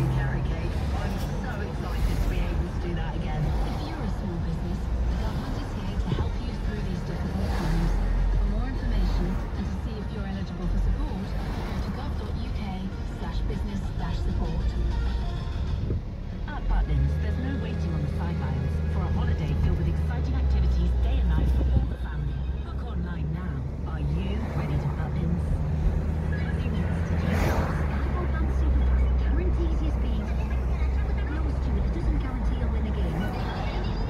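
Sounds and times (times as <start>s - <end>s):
engine and road noise: 0.0s - 34.0s
song on car radio: 0.0s - 34.0s.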